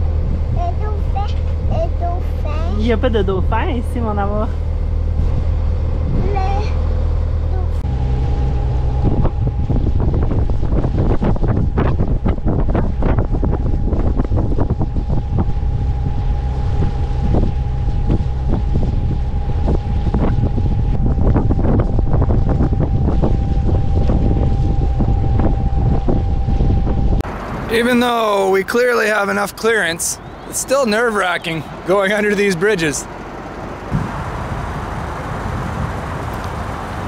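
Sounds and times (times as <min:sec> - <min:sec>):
low engine drone: 0:00.0 - 0:37.0
wind buffeting microphone: 0:00.0 - 0:37.0
thin high whine: 0:04.0 - 0:33.1.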